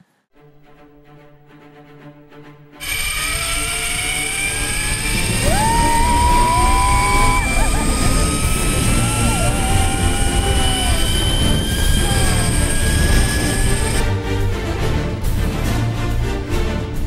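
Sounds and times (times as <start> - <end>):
zip-line pulleys whining on cable: 2.8 - 14.1
person whooping: 2.9 - 14.0.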